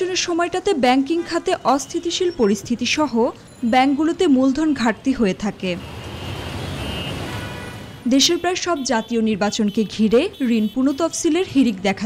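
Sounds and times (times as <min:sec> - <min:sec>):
city street traffic: 0:00.0 - 0:12.0.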